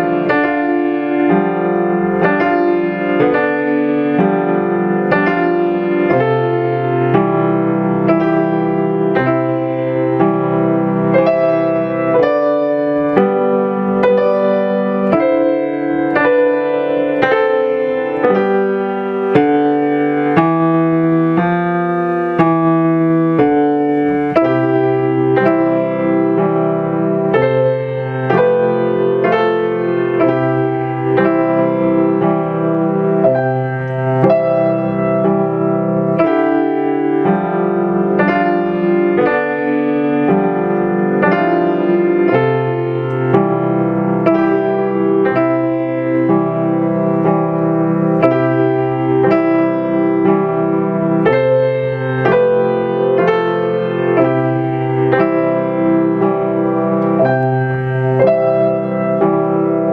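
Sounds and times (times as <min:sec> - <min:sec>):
grand piano playing: 0:00.0 - 0:59.9.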